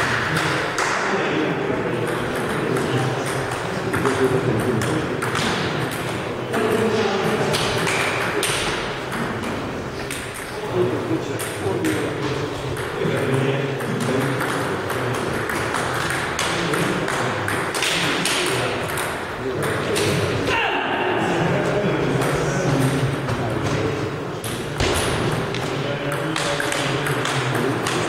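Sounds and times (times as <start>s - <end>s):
voices talking in a hall: 0.0s - 28.0s.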